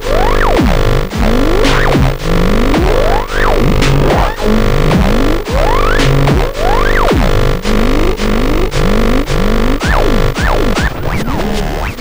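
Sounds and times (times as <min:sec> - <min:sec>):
heavy drum machine hits: 0:00.0 - 0:11.2.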